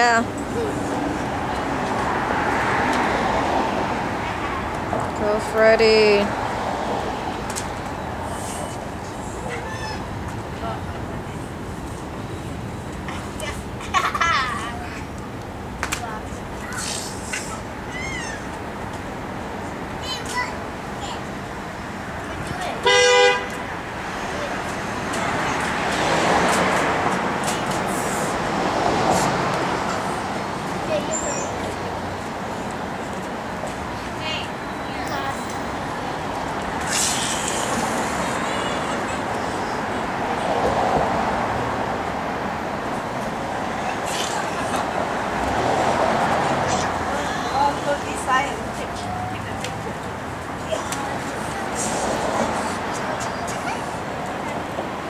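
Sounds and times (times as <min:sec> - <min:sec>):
street traffic noise: 0:00.0 - 0:55.0
two-tone car horn honk: 0:22.8 - 0:23.5.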